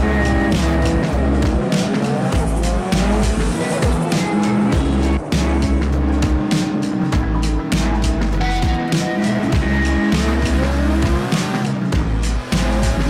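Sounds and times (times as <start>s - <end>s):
car engine revving: 0.0s - 13.0s
music with heavy beat: 0.0s - 13.0s.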